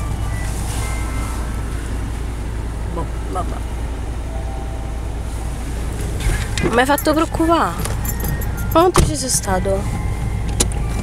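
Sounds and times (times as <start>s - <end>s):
low vehicle rumble: 0.0s - 11.0s.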